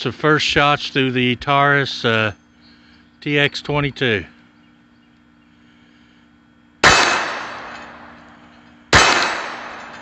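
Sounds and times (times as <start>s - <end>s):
pistol shots: 6.8s - 8.2s, 8.9s - 10.0s
steel target ringing: 6.8s - 10.0s.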